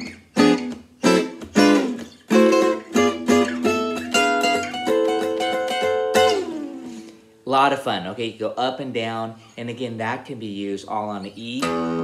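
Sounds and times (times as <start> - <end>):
acoustic guitar chords: 0.0 - 7.8, 11.6 - 12.0.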